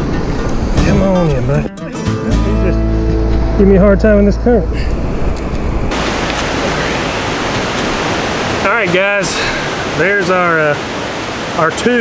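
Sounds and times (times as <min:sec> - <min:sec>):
fast river current rushing: 0:05.9 - 0:12.0.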